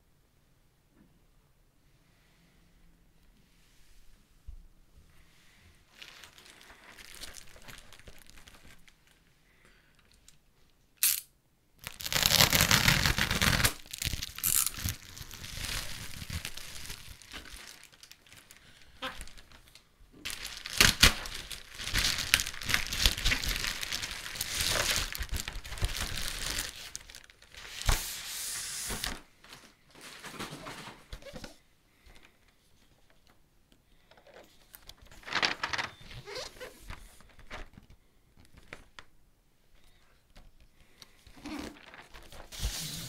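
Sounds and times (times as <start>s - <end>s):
plastic rustling: 5.8s - 10.4s, 11.8s - 33.4s, 34.0s - 39.2s, 39.8s - 43.0s
plastic wrapping tearing and crinkling: 5.9s - 9.2s, 11.8s - 28.2s, 34.6s - 39.0s, 41.3s - 43.0s
box sliding out of plastic bag: 42.5s - 43.0s.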